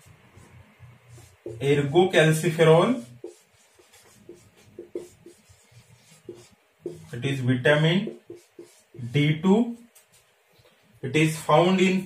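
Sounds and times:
marker writing on whiteboard: 0:00.0 - 0:10.3.

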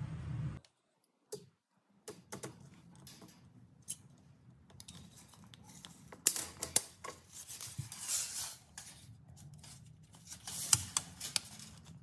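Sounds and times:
steady low hum: 0:00.0 - 0:00.6.

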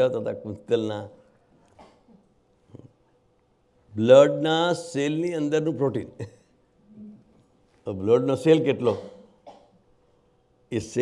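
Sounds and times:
man talking: 0:00.0 - 0:01.3, 0:03.9 - 0:06.4, 0:07.8 - 0:09.2, 0:10.7 - 0:11.0
man coughing: 0:08.8 - 0:09.8.

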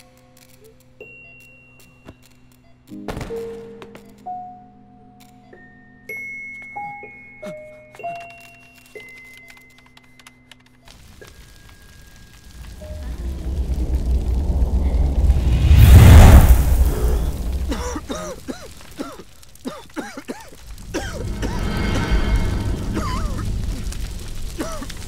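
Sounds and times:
low rumble: 0:12.4 - 0:18.4, 0:20.6 - 0:25.0
loud boom: 0:12.6 - 0:18.2, 0:20.7 - 0:25.0.

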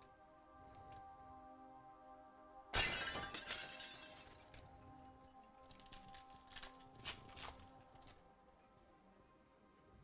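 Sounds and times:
soft background music: 0:00.0 - 0:10.0
foil wrapper crackling rustle: 0:05.6 - 0:08.3.

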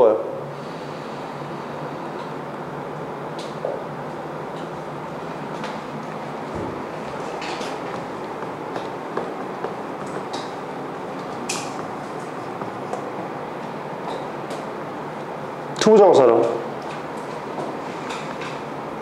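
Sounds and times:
room noise: 0:00.0 - 0:19.0.

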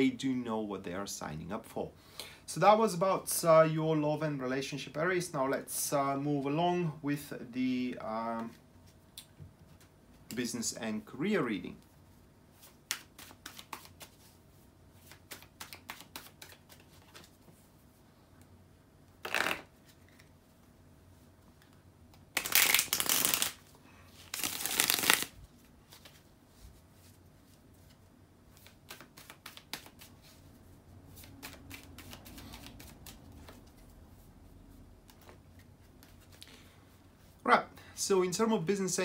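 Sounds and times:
cards being shuffled: 0:12.5 - 0:17.6, 0:19.2 - 0:20.4, 0:22.1 - 0:26.3, 0:27.0 - 0:30.5, 0:31.1 - 0:34.0, 0:35.0 - 0:36.5.

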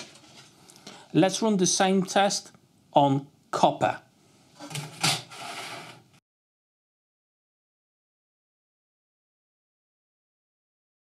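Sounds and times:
metal sheet scraping: 0:04.6 - 0:06.2.

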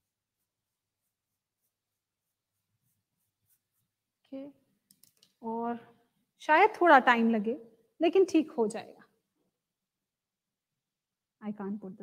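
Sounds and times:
paintbrush scratching on canvas: 0:00.0 - 0:04.2.

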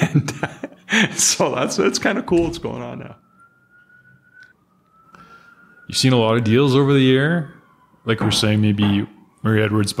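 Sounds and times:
high-pitched whistling tone: 0:02.3 - 0:09.9.

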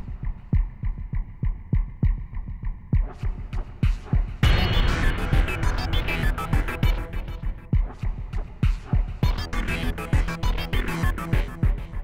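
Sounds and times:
heartbeat-like drum thumps: 0:00.0 - 0:12.0.

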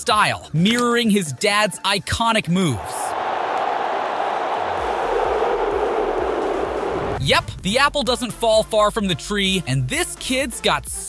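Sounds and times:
stadium crowd cheering: 0:02.4 - 0:07.3
thudding music beat: 0:04.7 - 0:11.0.

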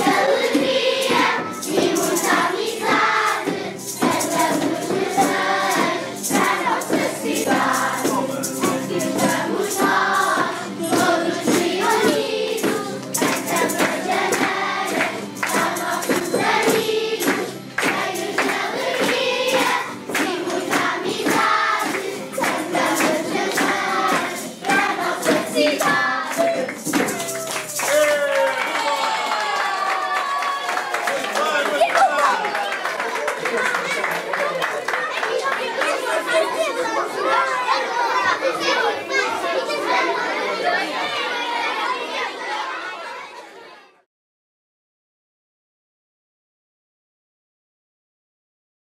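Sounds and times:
children singing in chorus: 0:00.0 - 0:27.4, 0:35.4 - 0:43.4
percussive beat: 0:00.0 - 0:28.3
young children chattering: 0:31.5 - 0:44.0.

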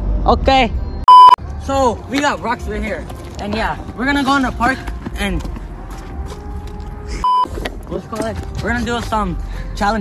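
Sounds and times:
censor bleep tone: 0:00.8 - 0:01.4.

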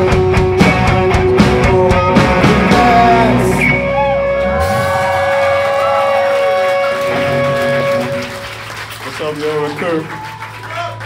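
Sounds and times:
rock band drums and bass: 0:00.0 - 0:08.2
crowd clapping: 0:04.6 - 0:11.0.

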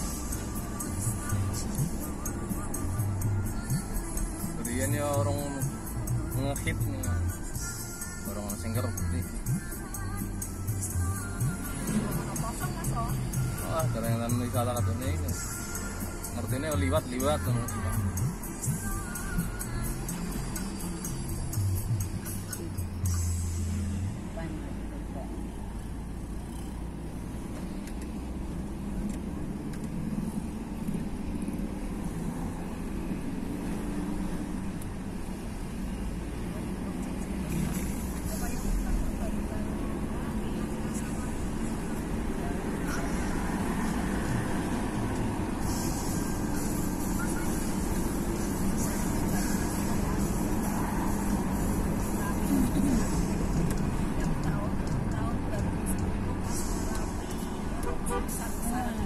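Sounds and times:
car engine and tyres rumble: 0:00.0 - 0:59.0.

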